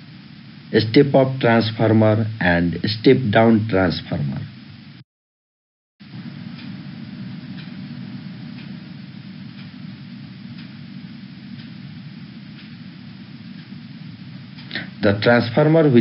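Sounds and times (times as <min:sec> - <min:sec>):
low background hum and hiss: 0:00.0 - 0:05.0, 0:06.0 - 0:16.0
faint ticking: 0:06.1 - 0:15.9.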